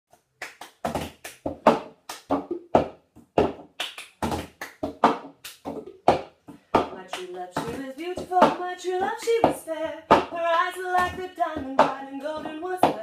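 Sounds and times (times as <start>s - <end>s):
hand claps: 0.2s - 13.0s.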